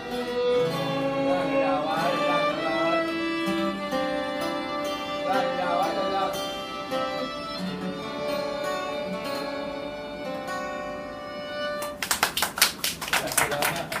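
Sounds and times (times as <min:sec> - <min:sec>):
violins playing: 0:00.0 - 0:12.0
acoustic guitar: 0:00.0 - 0:13.0
people clapping: 0:11.8 - 0:14.0.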